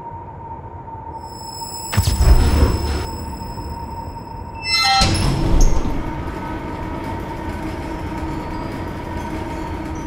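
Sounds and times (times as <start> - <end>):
low rumbling noise: 2.0 - 4.6.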